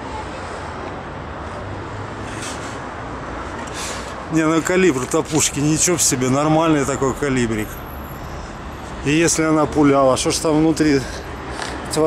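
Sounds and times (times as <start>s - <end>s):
city traffic hum: 0.0s - 12.0s.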